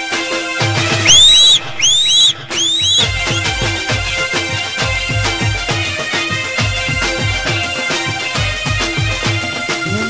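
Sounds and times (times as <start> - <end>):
whistle-like swoops: 1.0 - 3.5.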